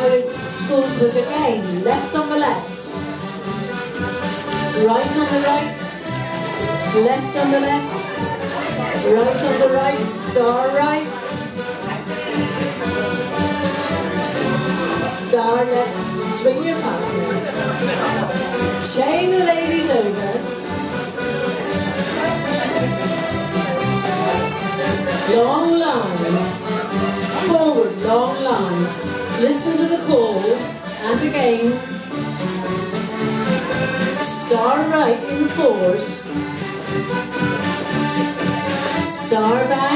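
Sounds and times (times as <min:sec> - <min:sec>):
folk dance band playing: 0:00.0 - 0:39.9.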